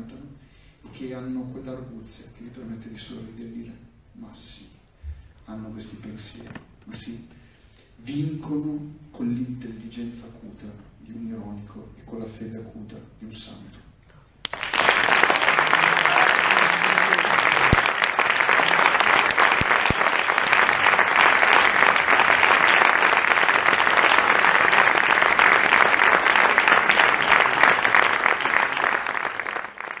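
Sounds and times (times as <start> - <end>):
audience applause: 14.4 - 30.0.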